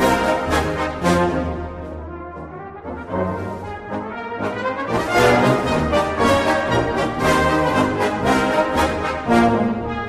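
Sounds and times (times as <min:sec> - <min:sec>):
brass band playing chords: 0:00.0 - 0:10.0.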